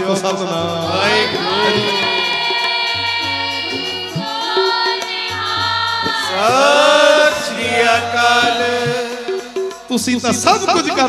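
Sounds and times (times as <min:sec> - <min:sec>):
voice singing gliding line: 0:00.0 - 0:09.9
sustained instrumental accompaniment: 0:00.0 - 0:11.0.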